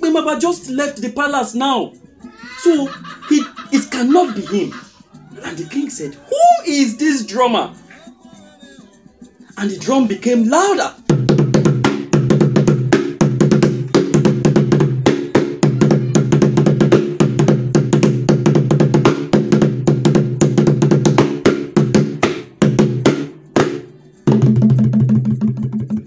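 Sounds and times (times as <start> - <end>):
fast irregular drumming: 11.1 - 23.7, 24.3 - 26.0.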